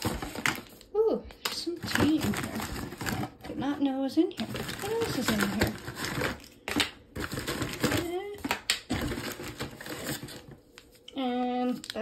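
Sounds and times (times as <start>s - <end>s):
plastic pods clicking and rattling: 4.4s - 10.3s.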